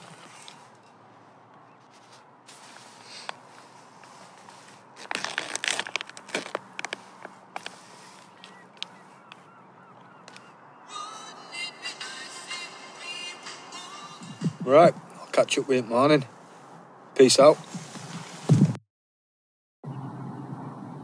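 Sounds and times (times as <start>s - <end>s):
foil pouch crinkling and tearing: 4.1s - 8.6s
geese honking: 7.7s - 14.3s.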